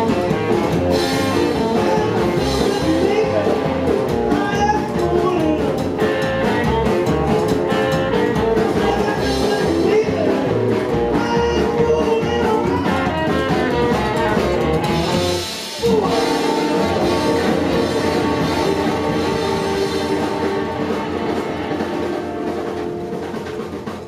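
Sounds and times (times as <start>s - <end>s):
upright double bass: 0.0s - 22.1s
drum kit: 0.0s - 24.0s
electric guitar: 0.0s - 24.0s
saxophone: 15.5s - 23.0s.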